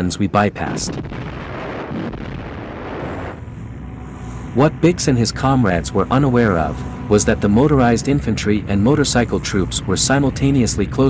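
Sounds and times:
distant artillery fire and explosions: 0:00.6 - 0:03.5.

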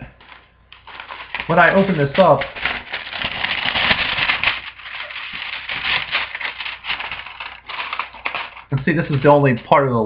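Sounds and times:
paper rustling and crinkling: 0:00.2 - 0:09.8.

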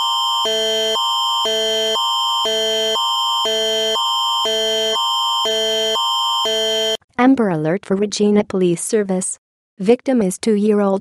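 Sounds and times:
alternating electronic alert tones: 0:00.0 - 0:07.0.

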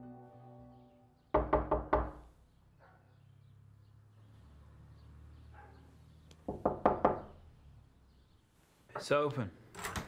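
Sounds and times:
knocking on a door: 0:01.4 - 0:02.2, 0:06.5 - 0:07.3.

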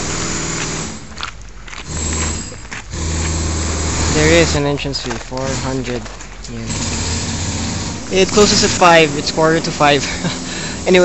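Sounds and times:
background hiss: 0:00.0 - 0:11.0
motor humming: 0:00.0 - 0:11.0.

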